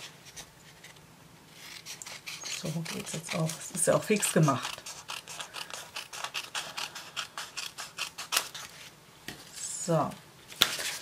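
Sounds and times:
scissors snipping paper: 1.7s - 8.8s.

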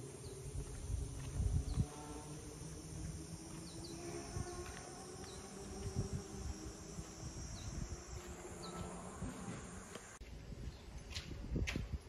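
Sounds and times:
insects shrill drone: 0.0s - 10.2s.

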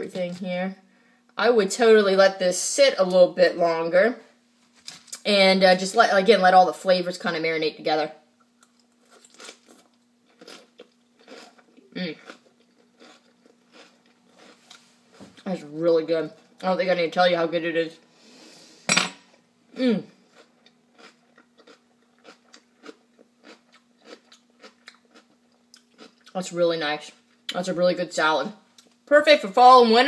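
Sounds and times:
person chewing crunchy food: 8.4s - 15.4s, 20.3s - 26.4s.

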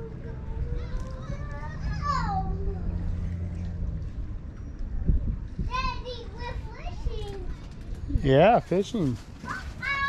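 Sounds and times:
child making wordless sounds: 0.0s - 3.1s
low rumble: 0.0s - 5.8s.

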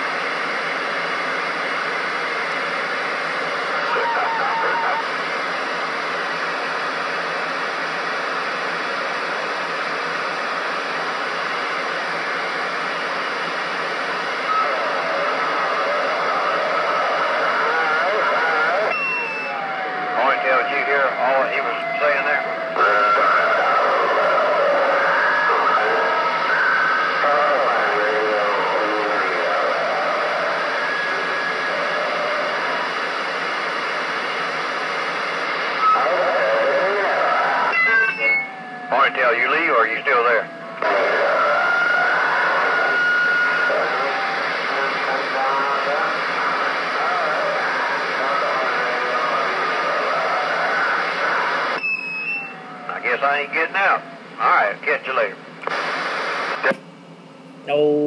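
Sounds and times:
faint garbled radio voices: 0.0s - 51.8s, 52.4s - 56.8s
radio static hiss: 0.0s - 51.8s, 52.4s - 56.9s.

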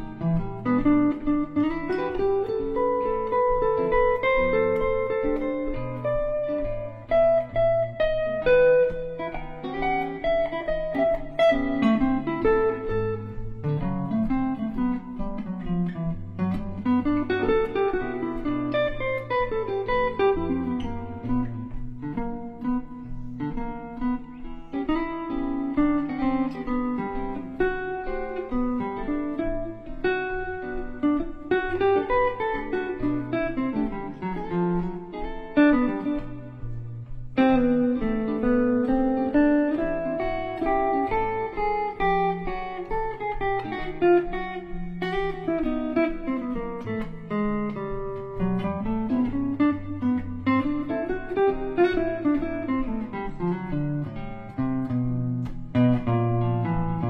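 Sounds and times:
jazz guitar improvisation: 0.0s - 57.0s.

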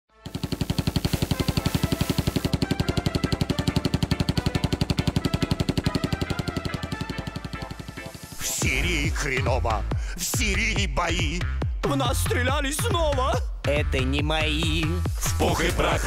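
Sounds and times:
machine gun firing: 0.2s - 8.5s.

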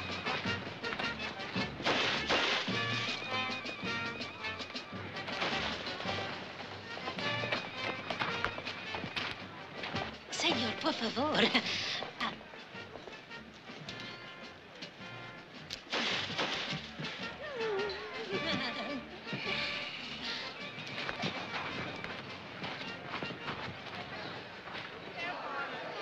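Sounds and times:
background music: 0.0s - 26.0s
people's voices: 3.8s - 15.2s, 17.2s - 26.0s.

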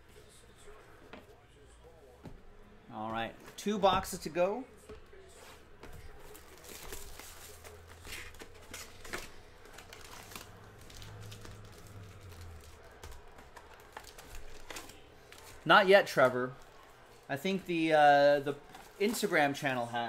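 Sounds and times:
cardboard clicks and rustles: 5.8s - 15.6s
shrink wrap crinkling and tearing: 6.3s - 15.6s.

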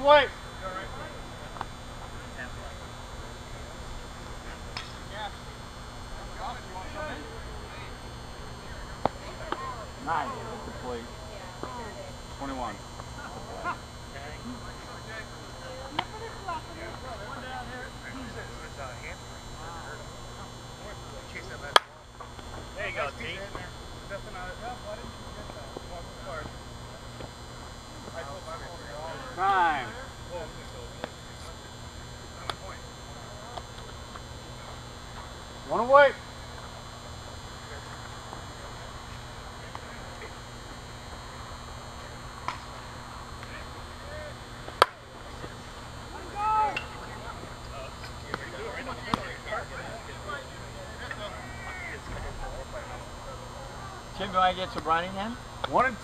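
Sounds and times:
players shouting: 28.4s - 30.2s, 43.4s - 47.6s, 48.4s - 54.8s
softball bat striking ball: 44.7s - 45.0s.

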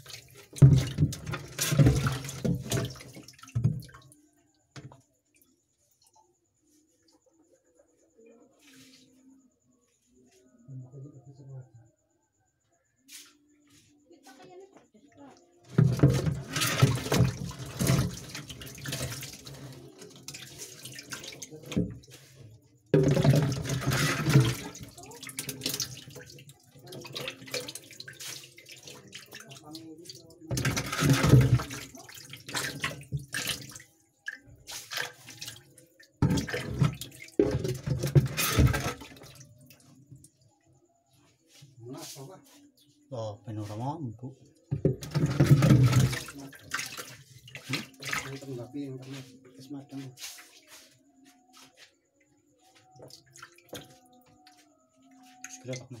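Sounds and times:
water splashing into a tub: 0.0s - 4.2s, 15.2s - 40.5s, 44.3s - 50.9s, 52.6s - 56.0s
water sloshing and dripping: 0.0s - 7.2s, 13.7s - 43.0s, 43.6s - 56.0s.

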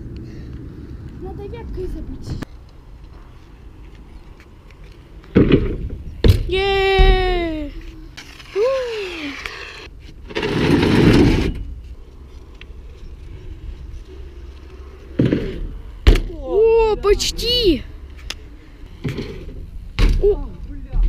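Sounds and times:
bike rolling and wind noise: 0.0s - 21.0s
bike scrape: 7.4s - 16.0s.

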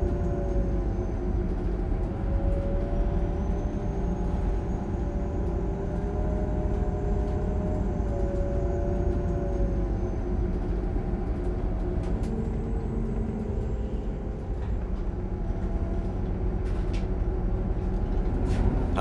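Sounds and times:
bus engine and road rumble: 0.0s - 19.0s.

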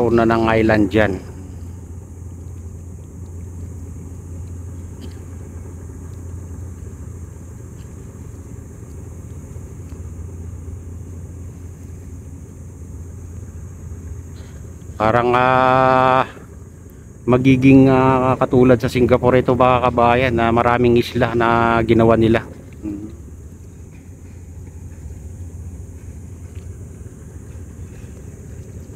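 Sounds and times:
low outdoor rumble: 0.0s - 28.9s
faint clicks: 1.6s - 7.0s.

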